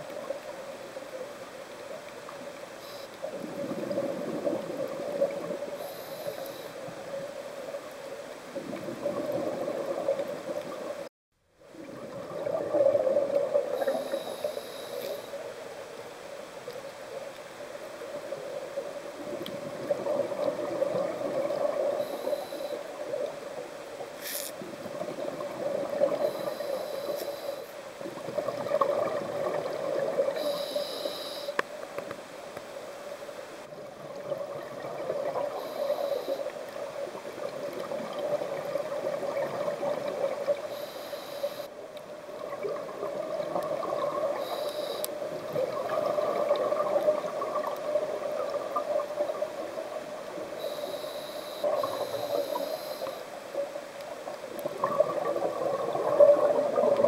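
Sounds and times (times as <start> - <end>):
underwater bubbles gurgling: 0.0 - 57.0
regulator breathing hiss: 2.8 - 3.3, 5.8 - 6.9, 13.8 - 15.4, 22.0 - 22.9, 26.2 - 27.8, 30.4 - 31.6, 35.6 - 36.6, 40.6 - 41.7, 44.4 - 45.1, 50.6 - 53.4.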